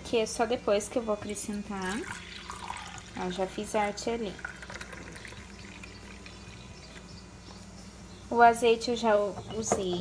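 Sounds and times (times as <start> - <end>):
milk pouring into a cup: 1.8 - 6.6.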